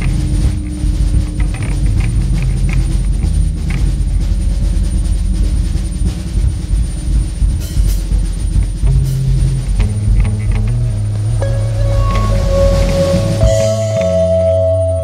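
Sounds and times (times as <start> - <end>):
droning electric guitar: 0.0 - 4.4, 8.8 - 15.0.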